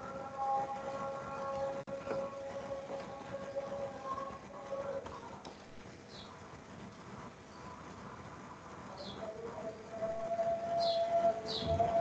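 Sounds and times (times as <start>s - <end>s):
call to prayer over loudspeaker: 0.0s - 5.4s, 9.0s - 12.0s.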